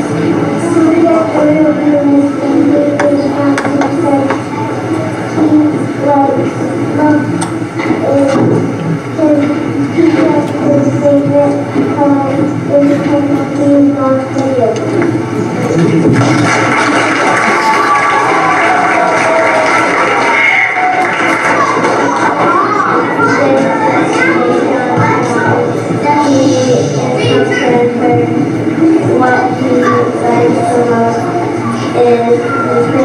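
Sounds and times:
child reading over pa system: 0.0s - 16.1s, 19.7s - 33.0s
room noise: 0.0s - 33.0s.

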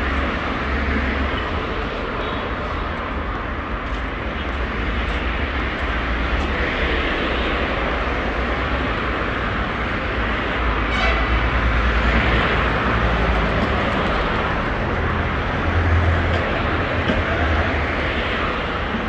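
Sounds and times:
low rumble of city street: 0.0s - 19.0s.

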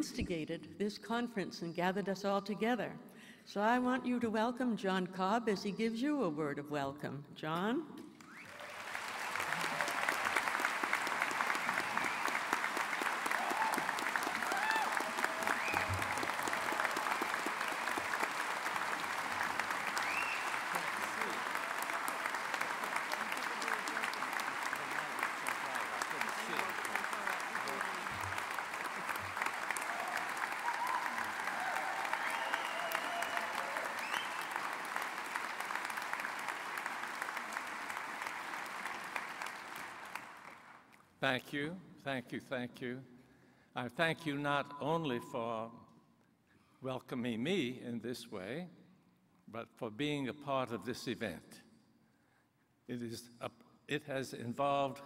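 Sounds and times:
audience applauding: 8.2s - 41.0s.

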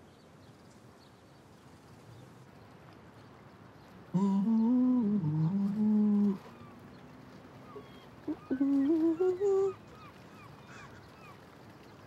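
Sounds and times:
person humming a tune: 4.2s - 6.5s, 8.3s - 9.8s.

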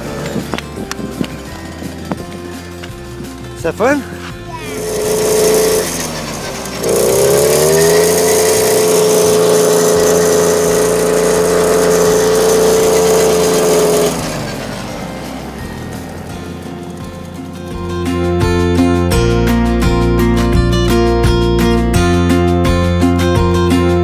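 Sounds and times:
small engine revving: 0.0s - 24.0s.

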